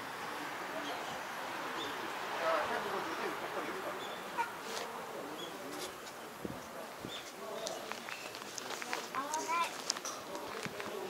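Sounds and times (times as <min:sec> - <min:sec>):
distant murmur of people talking: 0:00.0 - 0:11.0.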